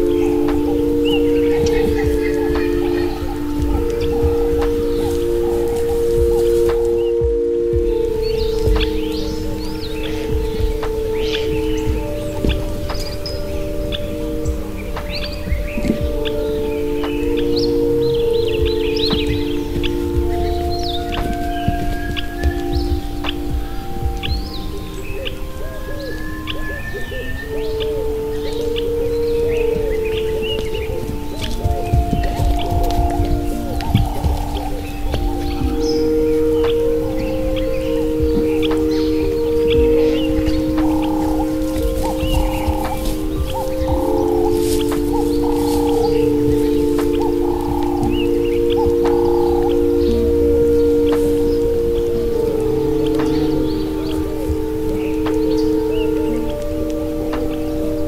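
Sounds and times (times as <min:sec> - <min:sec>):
ambient pad chords: 0:00.0 - 0:58.0
bird chirps: 0:00.0 - 0:58.0.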